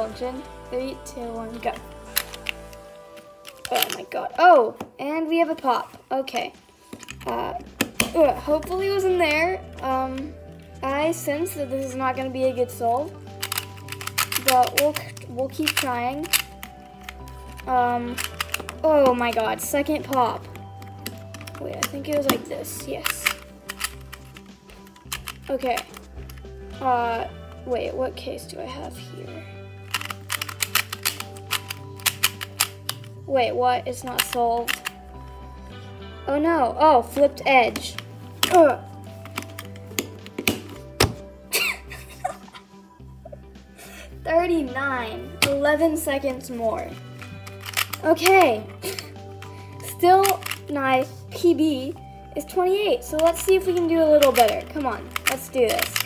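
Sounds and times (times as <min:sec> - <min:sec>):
background music: 0:00.0 - 0:56.0
puzzle pieces clicking and clacking: 0:01.6 - 0:04.1, 0:11.8 - 0:27.3, 0:29.8 - 0:33.2, 0:33.9 - 0:35.1, 0:37.1 - 0:42.5, 0:45.4 - 0:56.0
puzzle pieces clattering loose: 0:12.9 - 0:26.5, 0:29.8 - 0:33.2, 0:34.0 - 0:35.0, 0:37.8 - 0:42.5, 0:46.9 - 0:51.2, 0:53.0 - 0:56.0.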